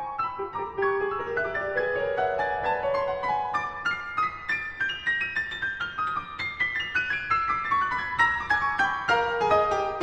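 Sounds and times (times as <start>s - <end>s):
piano music: 0.0s - 10.0s.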